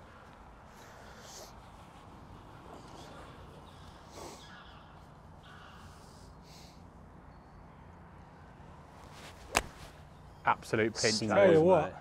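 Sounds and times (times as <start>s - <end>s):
golf club striking ball: 9.5s - 9.8s.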